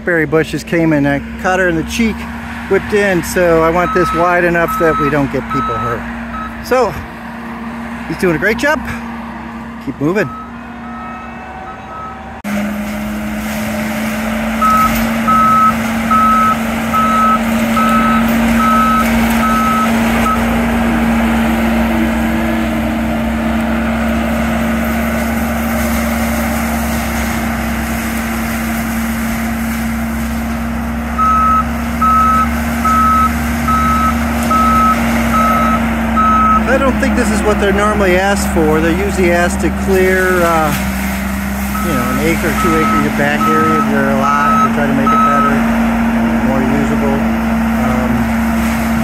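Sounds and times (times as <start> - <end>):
track loader humming: 0.0 - 49.0
reversing alarm beeping: 3.6 - 6.8, 10.2 - 12.4, 14.6 - 20.6, 31.2 - 36.9, 41.7 - 45.7.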